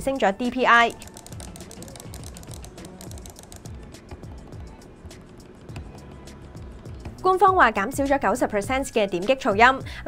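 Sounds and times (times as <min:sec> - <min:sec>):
background music: 0:00.0 - 0:10.0
computer mouse clicking rapidly: 0:00.8 - 0:04.2.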